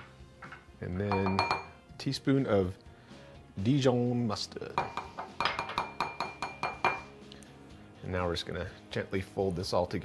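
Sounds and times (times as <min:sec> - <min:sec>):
utensil clinking ceramic bowl: 0:00.4 - 0:01.8, 0:04.8 - 0:07.1
bowl ringing: 0:01.1 - 0:01.8.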